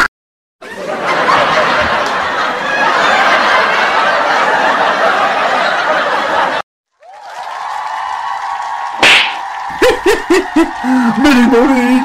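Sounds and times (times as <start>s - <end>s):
sharp slap sound effect: 9.0s - 9.5s.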